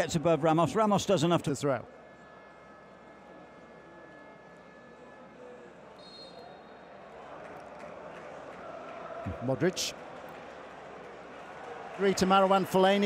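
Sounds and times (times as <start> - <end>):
stadium crowd murmur: 0.0 - 13.0.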